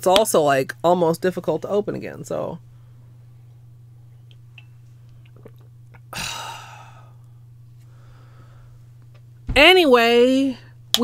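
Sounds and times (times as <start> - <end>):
steady low hum: 0.0 - 11.0
sipping and swallowing: 5.2 - 6.1.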